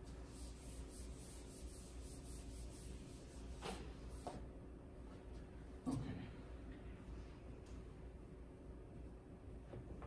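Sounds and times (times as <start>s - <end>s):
wiping a whiteboard: 0.0s - 4.5s.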